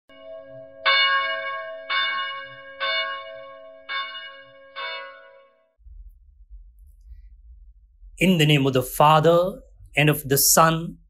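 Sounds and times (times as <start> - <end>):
bell ringing: 0.1 - 5.7.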